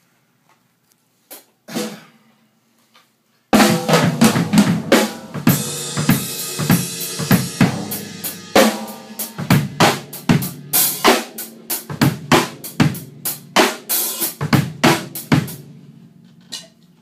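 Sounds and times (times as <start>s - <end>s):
drum strikes: 3.6s - 15.7s
cymbal wash ringing: 5.5s - 11.7s.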